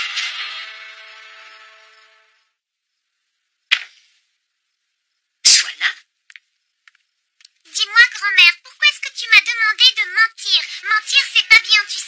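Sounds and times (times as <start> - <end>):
sharp click: 3.7 - 4.0.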